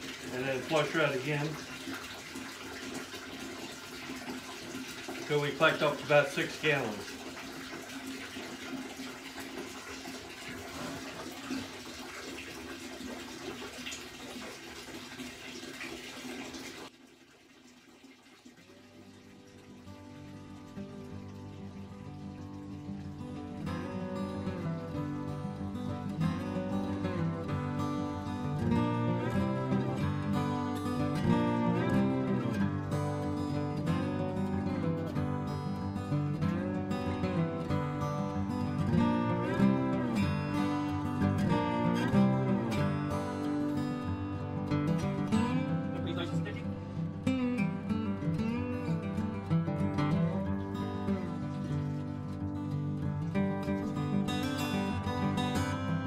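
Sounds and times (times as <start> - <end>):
acoustic guitar music: 0.0 - 13.7, 18.8 - 56.0
liquid draining steadily: 0.0 - 56.0.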